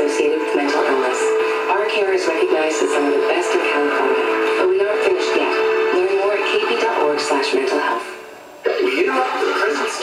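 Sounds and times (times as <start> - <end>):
music with singing on radio: 0.0 - 10.0.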